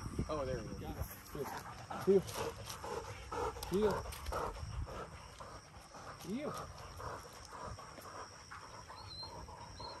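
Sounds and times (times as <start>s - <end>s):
dog panting hard: 0.6s - 10.0s.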